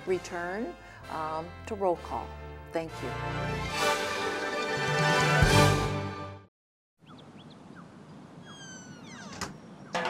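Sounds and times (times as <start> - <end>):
high gliding calls: 7.0 - 10.0.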